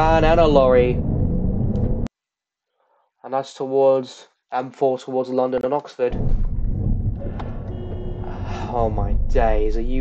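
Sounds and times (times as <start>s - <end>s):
car engine and road rumble: 0.0s - 2.1s, 6.1s - 10.0s.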